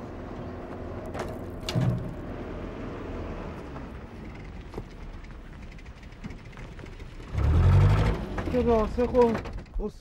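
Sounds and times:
loud vehicle engine driving up: 2.1 - 8.8.

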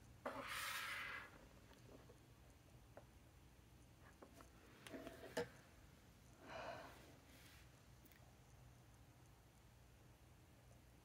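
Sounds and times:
breathy exhale: 6.4 - 7.6.

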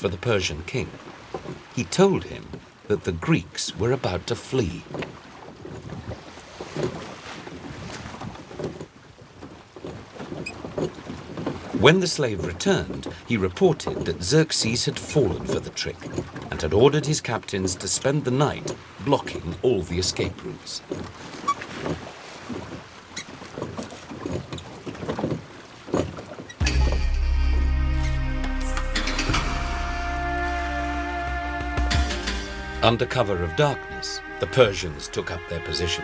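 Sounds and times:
narrator speaking: 0.0 - 1.0, 1.8 - 4.9, 32.5 - 36.0
oar strokes and splashing: 0.0 - 27.3, 28.9 - 36.0
music with deep held chord: 26.6 - 36.0.

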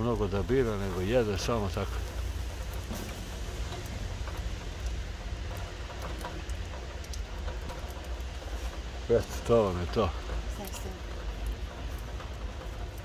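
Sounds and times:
light rain: 0.0 - 13.0
low steady rumble: 0.0 - 13.0
water dripping: 0.0 - 13.0.

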